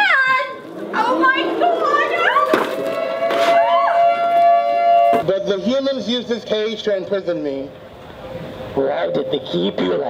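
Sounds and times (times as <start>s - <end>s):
short rising-and-falling cry: 0.0s - 5.1s
steady siren-like tone: 1.0s - 5.3s.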